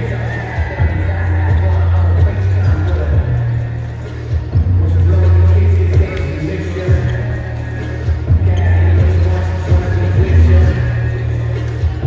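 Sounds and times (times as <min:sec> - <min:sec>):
loud music with heavy bass: 0:00.0 - 0:12.0.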